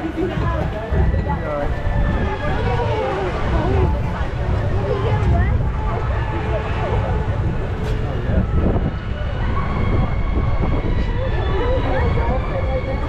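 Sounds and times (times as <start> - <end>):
riders talking and laughing: 0.0 - 8.4
ride boat rumble: 0.0 - 13.0.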